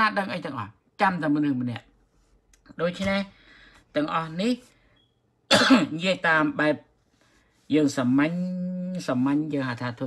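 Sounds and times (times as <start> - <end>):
man speaking: 2.6 - 4.7, 5.8 - 6.9, 7.7 - 10.0
harsh cough: 5.5 - 6.0.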